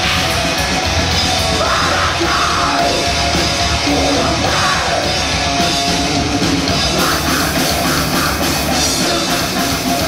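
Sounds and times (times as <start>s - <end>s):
death metal band playing live: 0.0s - 10.0s.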